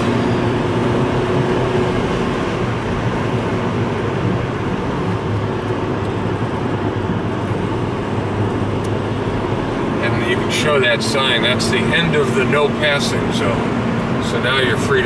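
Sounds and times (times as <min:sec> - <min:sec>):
car engine hum: 0:00.0 - 0:15.0
tyre road noise: 0:00.0 - 0:15.0.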